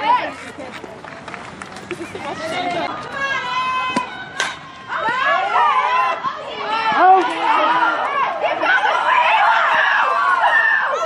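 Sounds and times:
crowd yelling and chattering: 0.0 - 11.0.

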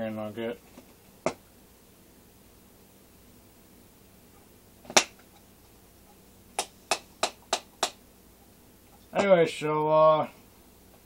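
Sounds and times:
sharp taps: 6.6 - 8.0.

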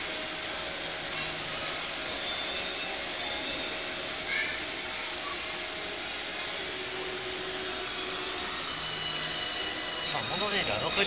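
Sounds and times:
monorail train mechanical hum: 0.0 - 11.0.

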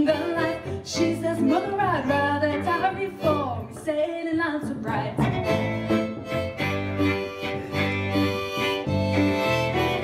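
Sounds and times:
fiddle: 0.0 - 4.2, 5.0 - 10.0
woman singing folk song: 0.0 - 5.6
guitar: 0.0 - 10.0.

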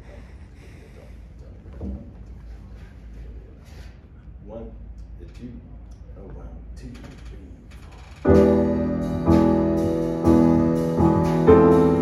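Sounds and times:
grand piano chords: 8.2 - 12.0.

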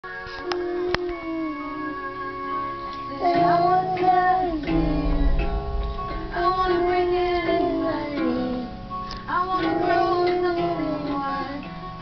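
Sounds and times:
music with long held notes: 0.0 - 12.0
girl singing: 0.1 - 12.0.

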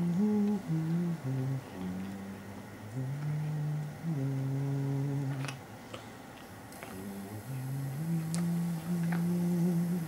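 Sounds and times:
man humming low tune: 0.0 - 5.6, 6.9 - 10.0.

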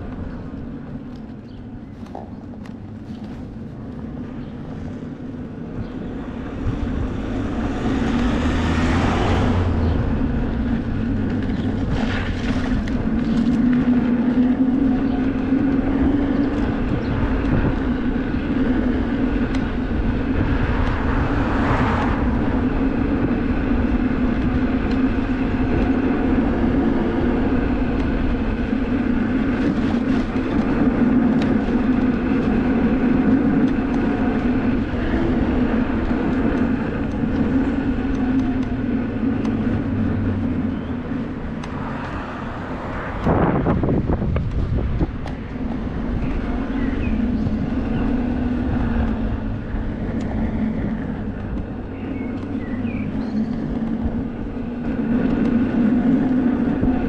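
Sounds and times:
wind on microphone: 0.0 - 57.0
whooshing noise: 19.6 - 24.8.

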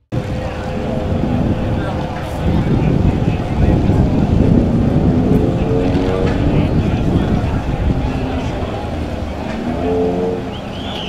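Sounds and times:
race car engines droning: 0.1 - 11.0.

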